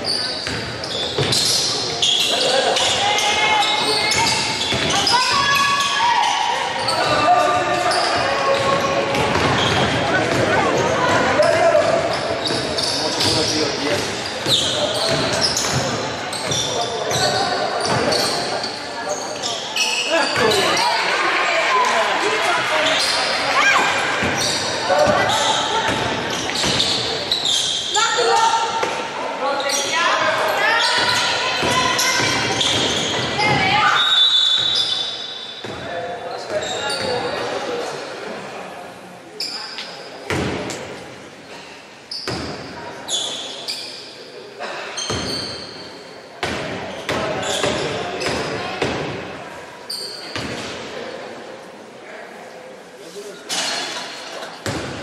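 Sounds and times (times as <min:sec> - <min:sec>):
basketball bouncing on wooden court: 0:14.5 - 0:18.2
referee's whistle: 0:34.0 - 0:35.2.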